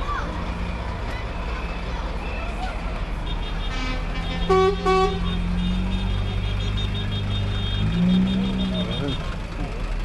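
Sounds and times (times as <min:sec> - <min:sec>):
crowd voices: 0:00.0 - 0:04.2
diesel lorry engine running: 0:00.0 - 0:10.0.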